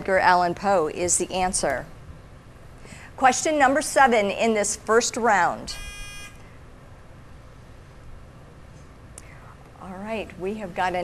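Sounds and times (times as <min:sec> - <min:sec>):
quiz show buzzer tone: 0:05.7 - 0:06.5.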